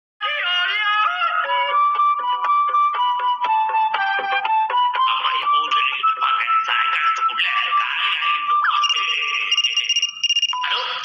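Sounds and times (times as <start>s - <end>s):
cartoon background music: 0.2s - 10.0s
telephone ringtone trill: 8.6s - 11.0s.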